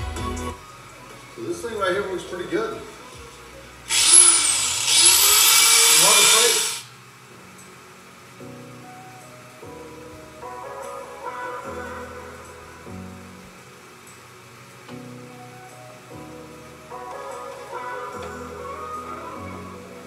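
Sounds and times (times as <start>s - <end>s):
background music: 0.0s - 6.7s, 7.3s - 20.0s
belt sander grinding steel: 3.9s - 6.9s.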